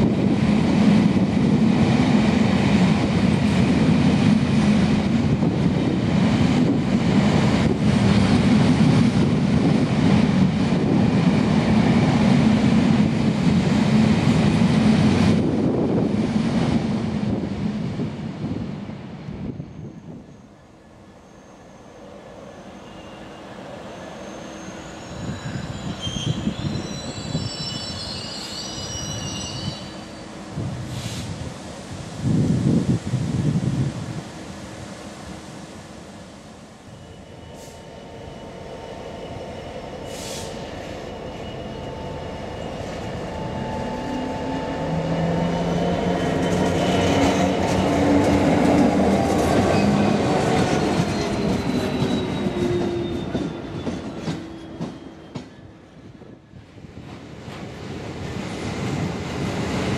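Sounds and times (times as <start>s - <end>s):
wind rumbling on microphone: 0.0s - 20.3s, 30.5s - 34.5s
diesel locomotive engine: 0.0s - 59.9s.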